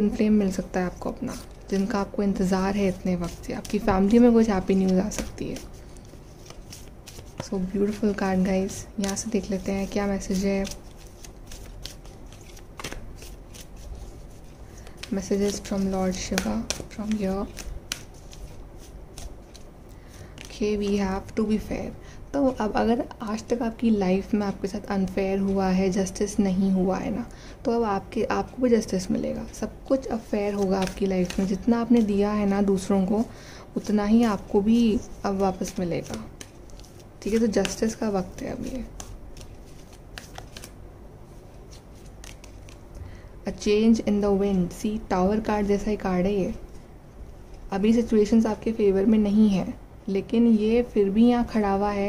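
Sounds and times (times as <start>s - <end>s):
cards being shuffled: 1.1s - 21.7s, 29.4s - 32.9s, 33.8s - 40.8s, 41.4s - 43.0s.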